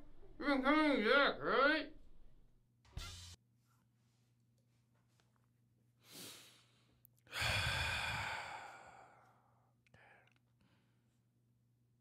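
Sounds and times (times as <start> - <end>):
person sighing: 7.3 - 10.4.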